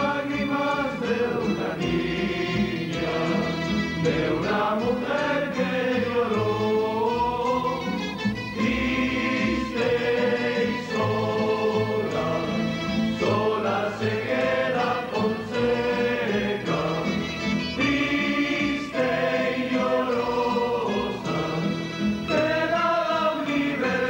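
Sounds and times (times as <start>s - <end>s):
group singing in chorus: 0.0s - 24.0s.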